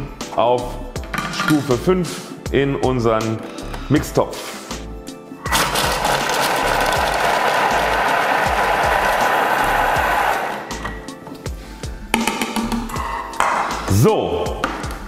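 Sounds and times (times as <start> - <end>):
food processor blades chopping: 5.5 - 10.6.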